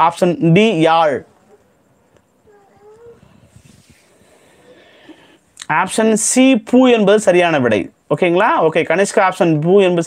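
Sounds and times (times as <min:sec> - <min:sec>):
low background noise: 0:00.0 - 0:10.0
faint wavering animal call: 0:01.2 - 0:04.8.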